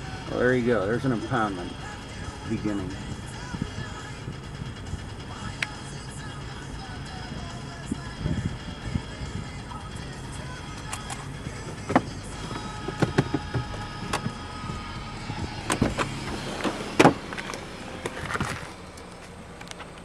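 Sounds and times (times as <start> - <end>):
low steady rumble: 0.0 - 20.0
sharp clicks and knocks: 10.7 - 14.8, 15.6 - 20.0.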